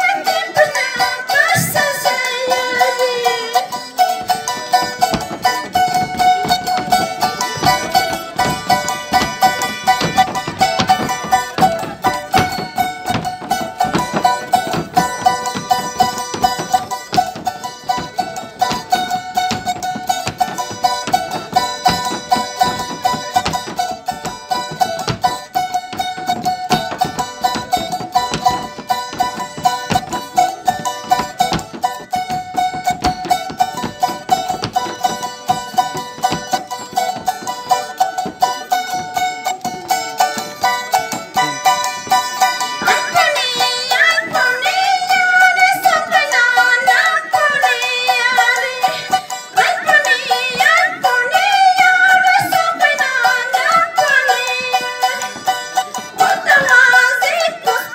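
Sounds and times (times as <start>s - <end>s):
woman singing into microphone: 0.0s - 6.3s, 42.7s - 57.9s.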